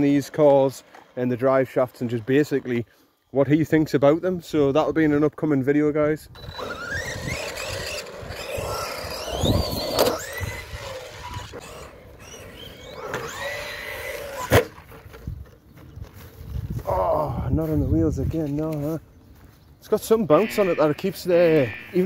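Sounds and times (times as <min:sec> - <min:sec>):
electric motor whining: 0:06.3 - 0:14.9.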